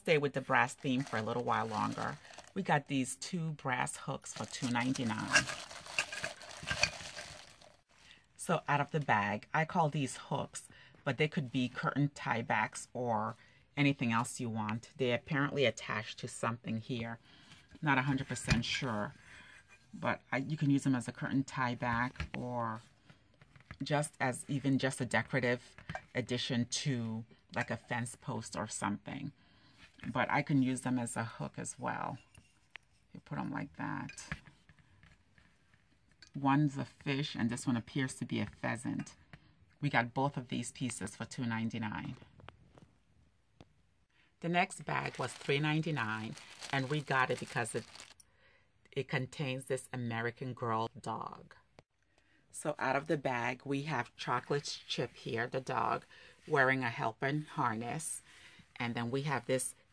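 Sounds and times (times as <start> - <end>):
plastic bag rustling and crinkling: 0.1 - 2.8, 4.2 - 8.1, 44.6 - 48.2.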